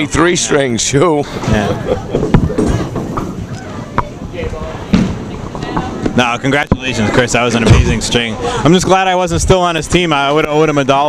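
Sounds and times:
crowd chatter: 0:00.0 - 0:11.0
bowling ball rolling on lane: 0:01.4 - 0:04.2.

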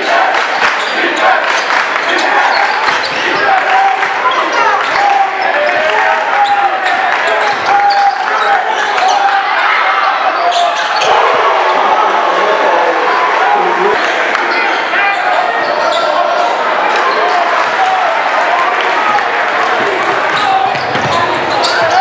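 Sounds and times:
crowd voices and shouts: 0:00.0 - 0:22.0
sneakers squeaking: 0:00.6 - 0:01.2, 0:06.4 - 0:11.2, 0:14.0 - 0:17.6, 0:20.2 - 0:22.0.

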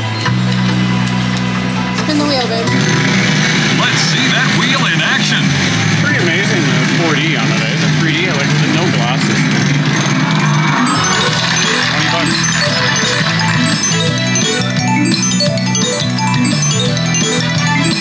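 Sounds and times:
slot machine music and effects: 0:00.0 - 0:18.0
repeating electronic tones: 0:10.2 - 0:18.0
casino background chatter: 0:10.8 - 0:16.8.

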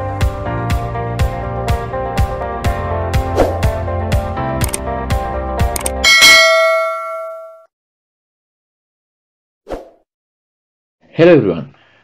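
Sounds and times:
notification bell ding: 0:06.0 - 0:07.7.

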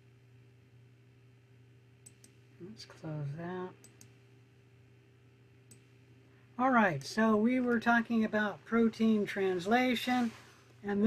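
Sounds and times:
faint electrical hum: 0:00.0 - 0:11.0
computer mouse clicks: 0:02.0 - 0:02.4, 0:03.8 - 0:04.2, 0:05.7 - 0:05.9.

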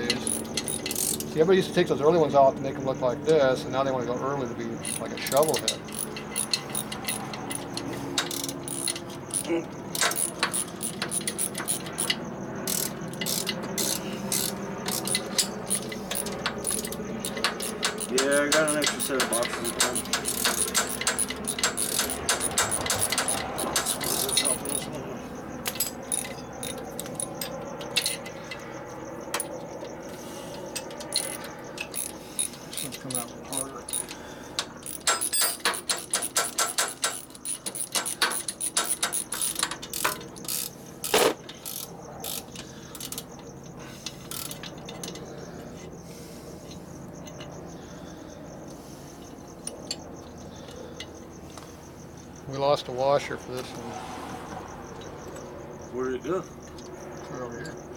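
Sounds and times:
ratchet wrench clicking: 0:00.0 - 0:01.4, 0:04.8 - 0:24.9, 0:25.6 - 0:30.0, 0:30.6 - 0:43.4, 0:44.0 - 0:45.3
metal tool clinks: 0:13.2 - 0:25.0, 0:34.8 - 0:40.4.

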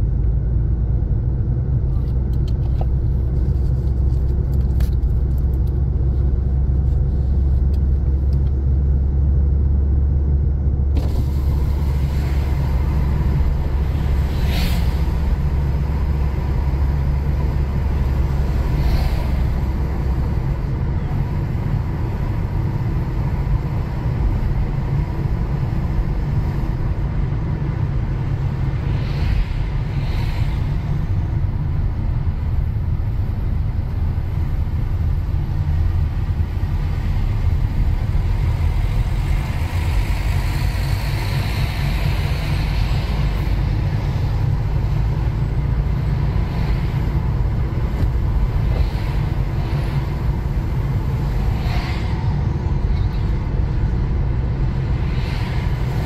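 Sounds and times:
car engine and road noise: 0:00.0 - 0:56.0
road hiss: 0:11.0 - 0:27.4, 0:28.1 - 0:56.0.

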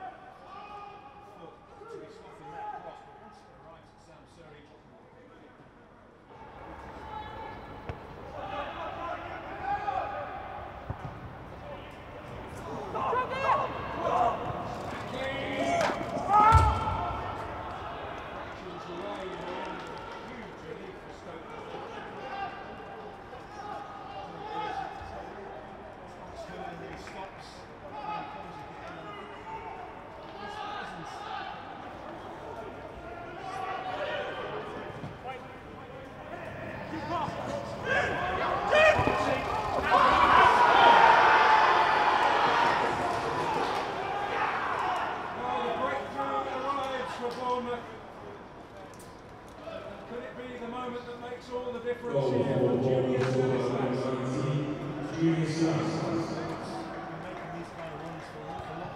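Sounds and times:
voices calling across pitch: 0:52.0 - 0:57.6.

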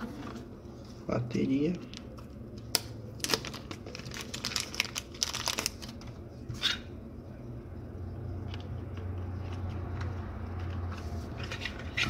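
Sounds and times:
plastic bag crinkling: 0:03.2 - 0:06.0.

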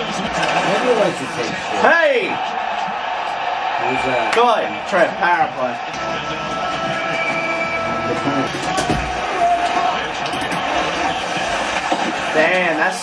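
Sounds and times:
arena crowd noise: 0:00.0 - 0:13.0.

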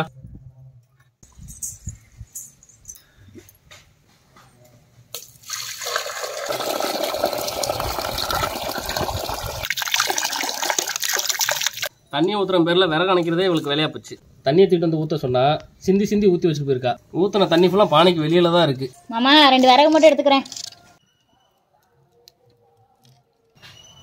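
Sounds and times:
water pouring into clay pot: 0:05.2 - 0:11.9
water spilling: 0:05.2 - 0:11.9.

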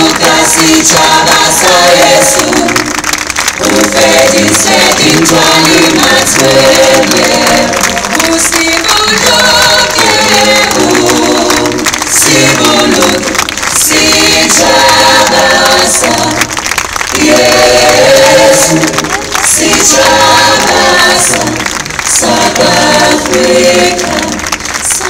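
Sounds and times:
choir-like group singing: 0:00.0 - 0:25.0.

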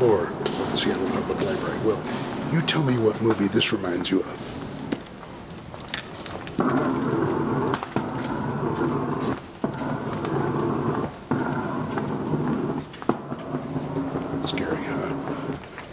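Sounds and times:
rolling bag wheels rumbling: 0:00.0 - 0:15.9
wheels clicking over floor joints: 0:00.0 - 0:15.9.

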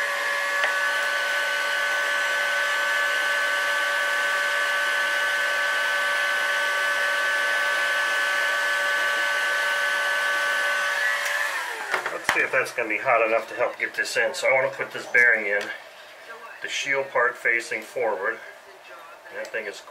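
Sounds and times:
heat gun whining: 0:00.0 - 0:15.8.

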